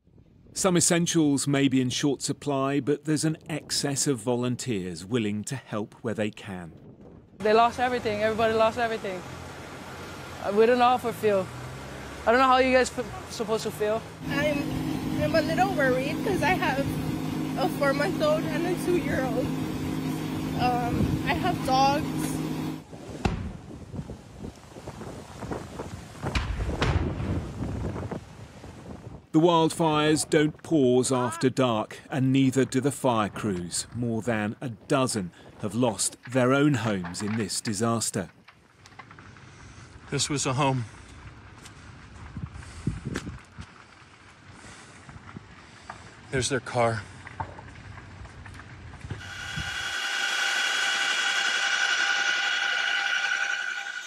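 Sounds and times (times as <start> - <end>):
wind buffeting microphone: 6.6 - 8.8, 14.2 - 30.7, 40.9 - 46.3
helicopter turbine whine: 14.2 - 22.8, 49.2 - 54.0
low rumble: 14.2 - 24.5
faint rumble and crackles: 31.9 - 49.2
sharp cracks: 38.2 - 40.0.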